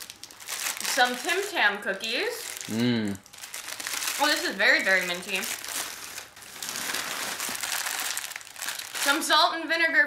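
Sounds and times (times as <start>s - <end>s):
plastic snack bag rustling: 0.0s - 9.4s.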